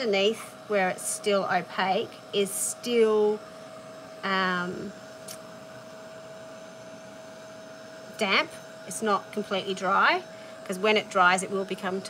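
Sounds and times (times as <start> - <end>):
heat tool fan whirring: 0.0 - 12.0.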